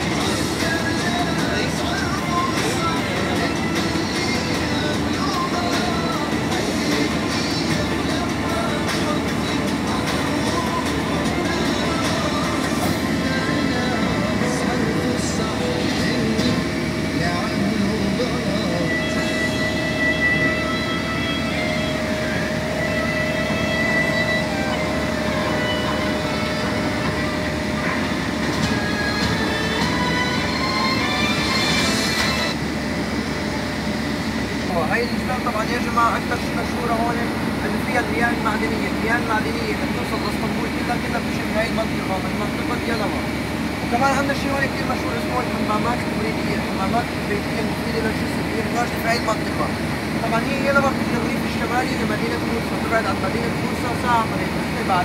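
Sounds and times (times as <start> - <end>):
road and engine rumble: 0.0 - 55.0.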